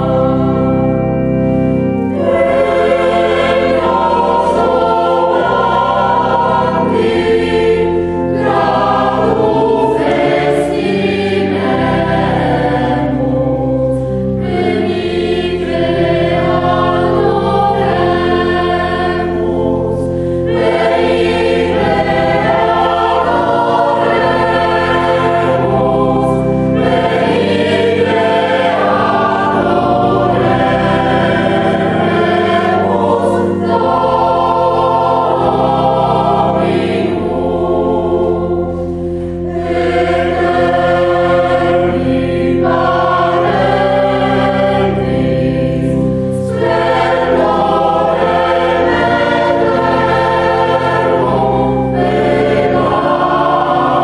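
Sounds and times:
mixed choir singing a carol: 0.0 - 54.0
sustained low accompaniment chords: 0.0 - 54.0.

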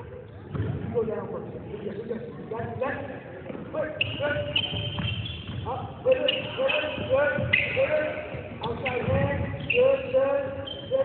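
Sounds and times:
basketball bouncing on wooden floor: 4.7 - 5.7, 6.8 - 7.6.

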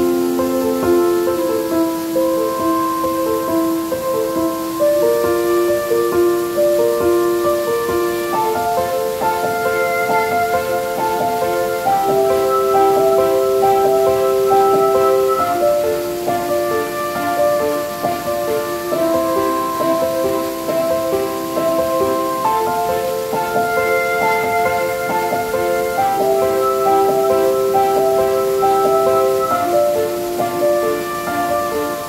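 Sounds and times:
calm piano music: 0.0 - 32.0
rushing falling water: 0.0 - 32.0.

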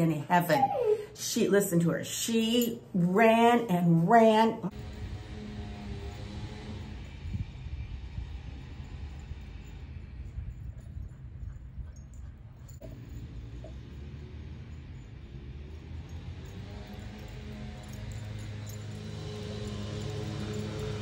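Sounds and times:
faint musical tones: 4.7 - 21.0
low uneven rumble: 4.7 - 21.0.

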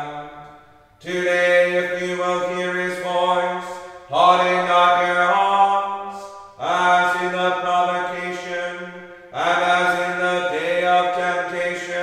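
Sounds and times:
chant in long held tones: 0.0 - 12.0.

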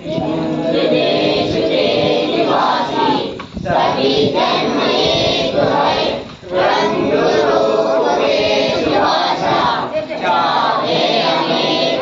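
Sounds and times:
children singing in unison: 0.0 - 12.0.

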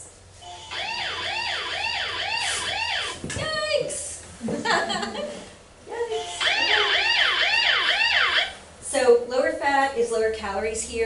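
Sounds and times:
siren yelping: 0.4 - 3.2, 6.2 - 8.6.

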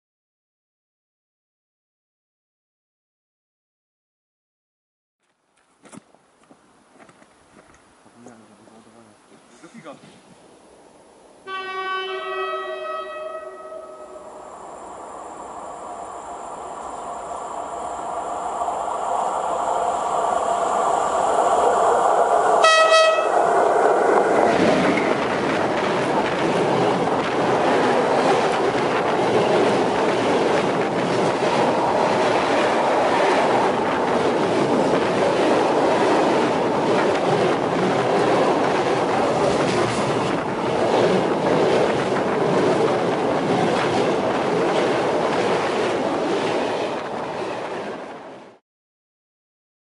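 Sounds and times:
locomotive horn blast: 11.4 - 14.3, 22.6 - 23.4
train wheels rumbling on rails: 14.1 - 48.6.

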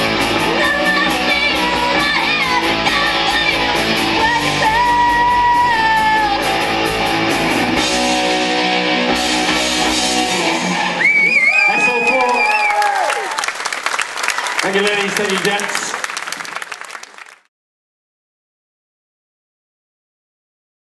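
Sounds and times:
person singing: 0.0 - 7.1
live rock band playing: 0.0 - 11.5.

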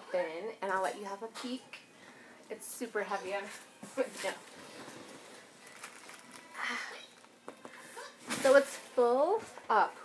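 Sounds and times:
cardboard and plastic rustling: 3.5 - 9.1.

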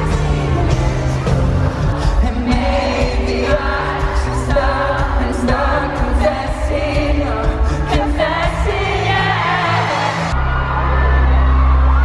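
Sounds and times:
pop song with male vocal: 0.0 - 10.4.

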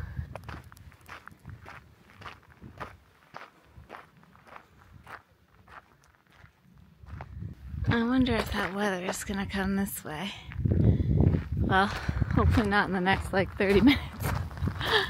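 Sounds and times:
footsteps on gravel: 0.3 - 9.8, 10.5 - 15.0.

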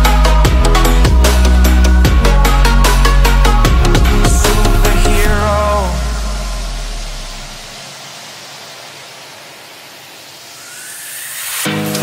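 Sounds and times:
electronic dance music bass: 0.0 - 8.2
white-noise wash: 0.0 - 12.0
rising tone: 1.1 - 12.0.

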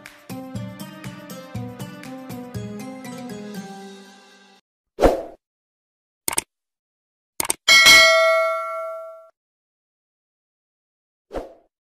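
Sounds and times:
bright bell ding: 7.7 - 9.3.

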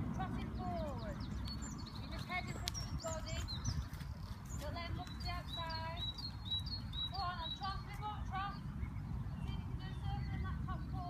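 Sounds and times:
birds chirping and singing: 0.0 - 11.0.

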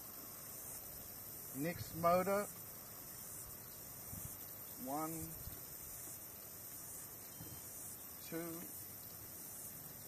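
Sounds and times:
insects chirring: 0.0 - 10.0
man speaking: 4.8 - 5.4, 8.2 - 8.7.

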